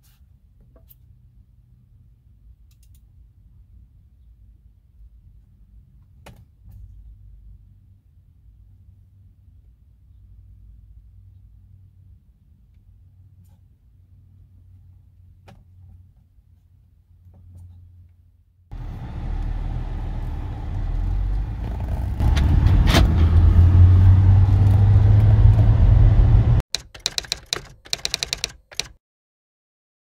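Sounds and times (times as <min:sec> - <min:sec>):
car engine pulling away: 0:18.7 - 0:26.6
sharp clicks and rattles: 0:26.7 - 0:29.0.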